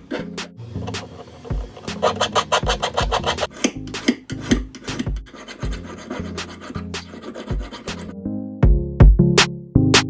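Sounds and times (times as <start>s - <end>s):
background music with beat: 0.1s - 10.0s
file rasping on metal ring: 0.8s - 8.2s.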